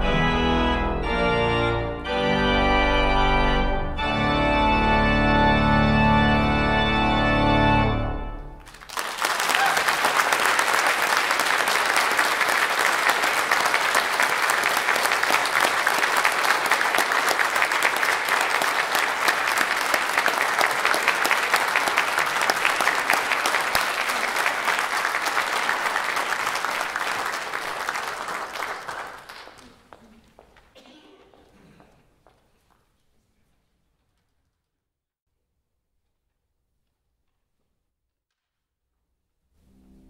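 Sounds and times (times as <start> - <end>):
audience applauding: 8.6 - 30.5.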